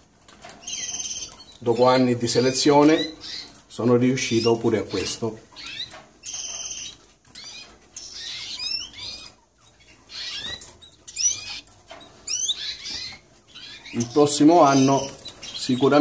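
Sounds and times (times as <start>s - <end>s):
canaries chirping: 0.0s - 16.0s.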